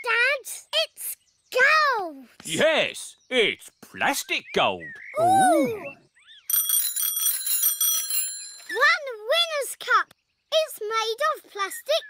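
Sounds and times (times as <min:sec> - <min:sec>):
bicycle bells ringing: 0:06.5 - 0:09.0.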